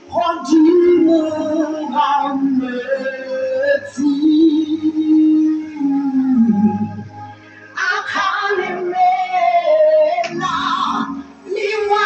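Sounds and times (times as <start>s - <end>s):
vocal quartet singing in harmony: 0.0s - 12.0s.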